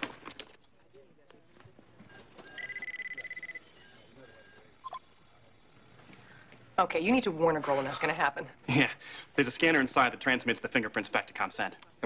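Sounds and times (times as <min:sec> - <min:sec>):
steady high beep: 0:02.5 - 0:06.4
fast-pulsing electronic chirp: 0:02.6 - 0:06.4.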